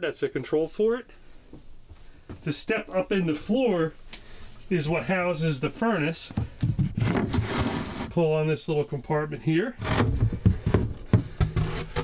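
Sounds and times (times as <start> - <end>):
sharp wooden knocks: 6.3 - 7.7, 9.8 - 12.0
wood rubbing: 6.3 - 8.2, 9.8 - 12.0.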